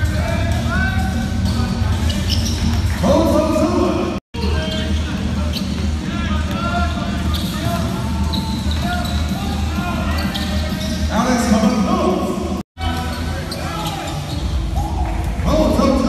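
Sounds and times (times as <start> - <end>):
music: 0.0 - 16.0
voices: 0.0 - 16.0
sneakers squeaking on hardwood: 0.8 - 3.1, 4.6 - 5.9, 7.0 - 11.2, 12.9 - 14.7.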